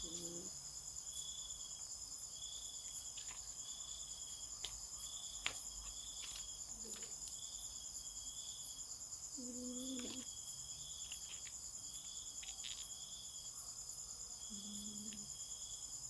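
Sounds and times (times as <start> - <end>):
insects trilling: 0.0 - 16.0
lower insect chirp: 0.0 - 16.0.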